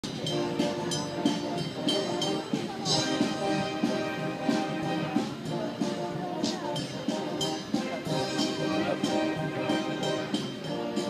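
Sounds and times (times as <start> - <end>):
military band playing a march: 0.0 - 11.0.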